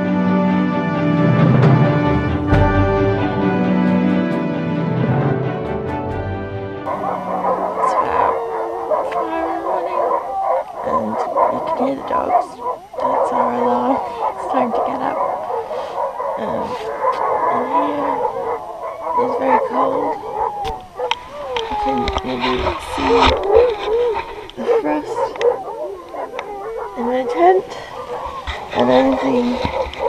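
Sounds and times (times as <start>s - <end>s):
dogs howling in chorus: 6.8s - 30.0s.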